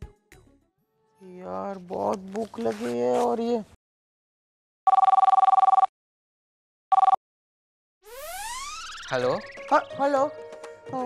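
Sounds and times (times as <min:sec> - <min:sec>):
two-tone electronic telephone ring: 0:04.9 - 0:05.9, 0:06.9 - 0:07.2.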